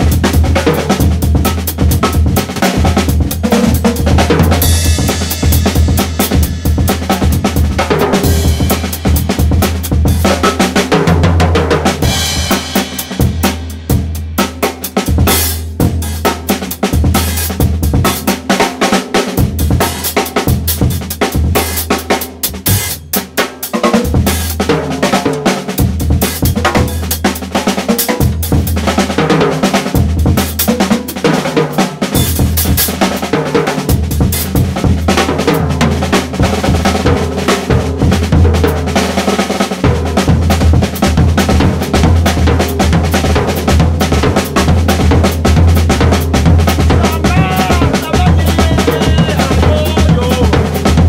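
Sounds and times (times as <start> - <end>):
drum kit breakbeat: 0.0 - 51.0
deep bass line: 46.8 - 51.0.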